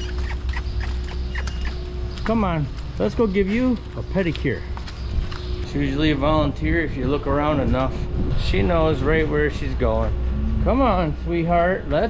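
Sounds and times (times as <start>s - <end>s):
short high chirps: 0.0s - 1.8s
steady low hum: 0.0s - 12.0s.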